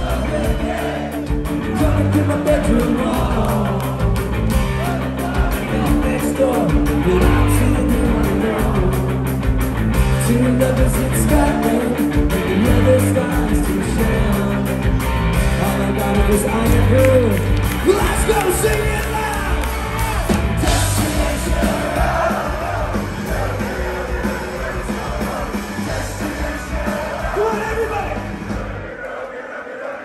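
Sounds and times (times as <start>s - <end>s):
person singing: 0.0s - 4.2s, 4.8s - 9.2s, 10.2s - 14.9s
electric guitar: 0.0s - 27.4s
bass guitar: 0.0s - 28.8s
drum kit: 0.0s - 29.0s.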